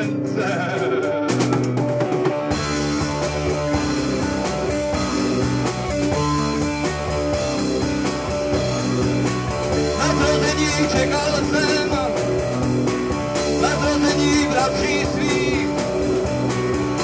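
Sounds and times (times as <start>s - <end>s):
instrumental rock music: 0.0s - 17.0s.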